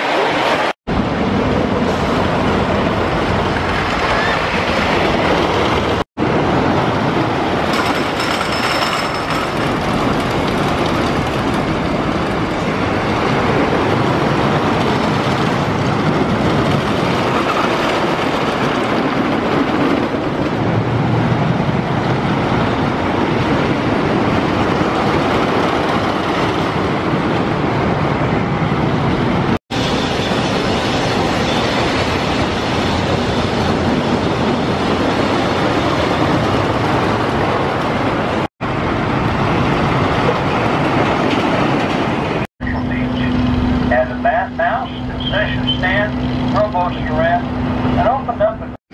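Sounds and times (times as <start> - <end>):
roller coaster rumbling on track: 0.0 - 48.9.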